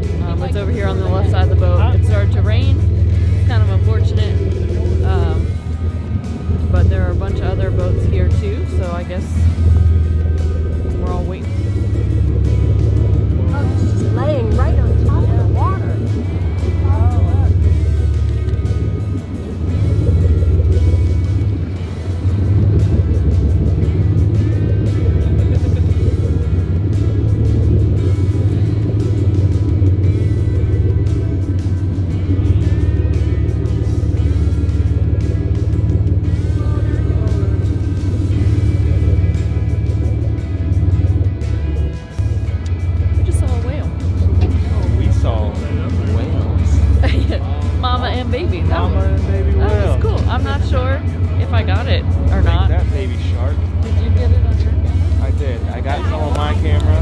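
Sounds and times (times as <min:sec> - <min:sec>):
background music: 0:00.0 - 0:57.0
boat engine rumbling: 0:00.0 - 0:57.0
indistinct voices: 0:00.0 - 0:57.0.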